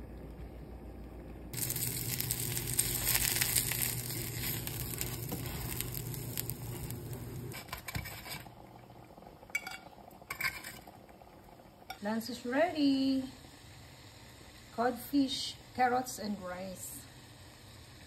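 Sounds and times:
fish sizzling in frying pan: 0:01.6 - 0:07.8.

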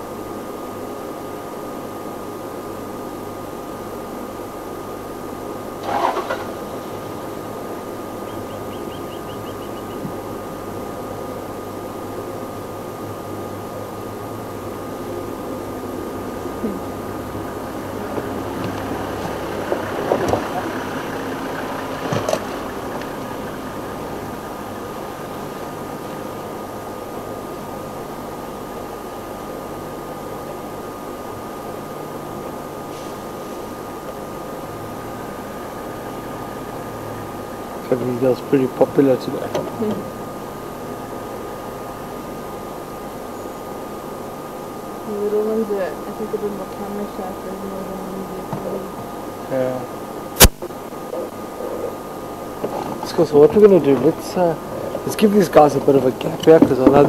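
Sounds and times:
vehicle engine idling: 0:04.6 - 0:28.1.

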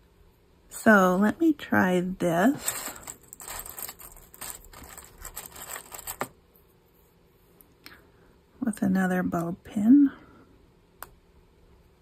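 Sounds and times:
paper rustling: 0:02.6 - 0:06.3.

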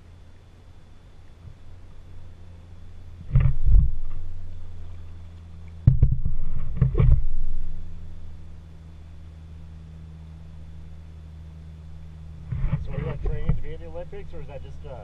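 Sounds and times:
steady low hum: 0:00.0 - 0:15.0
kayak paddling knocks and water: 0:03.2 - 0:07.4, 0:12.4 - 0:13.8.

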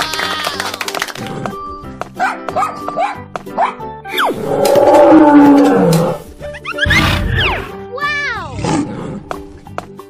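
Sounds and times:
children's background music: 0:00.0 - 0:10.0.

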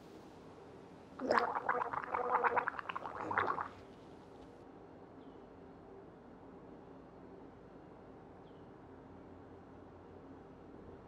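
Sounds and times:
man gurgling in his throat: 0:01.2 - 0:03.7.

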